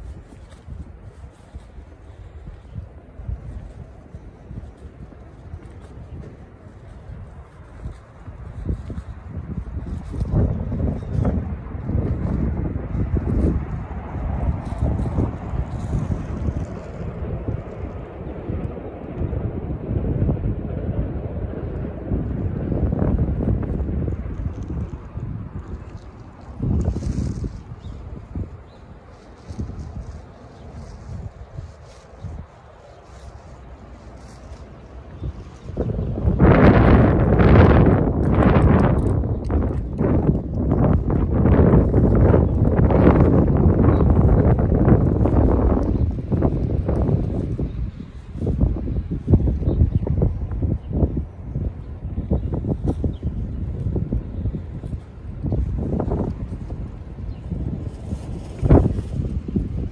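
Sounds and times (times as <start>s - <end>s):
wind on microphone: 0.0s - 59.9s.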